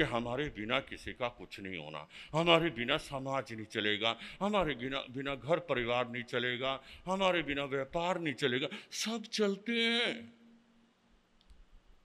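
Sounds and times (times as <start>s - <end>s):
faint click: 11.4s - 11.8s.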